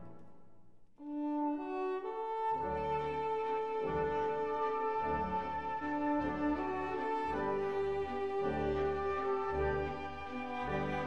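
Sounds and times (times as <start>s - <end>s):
bowed string melody: 1.3s - 11.0s.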